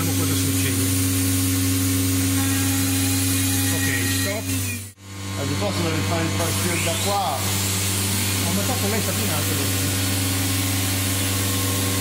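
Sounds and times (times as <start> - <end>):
machine humming and hissing: 0.0 - 12.0.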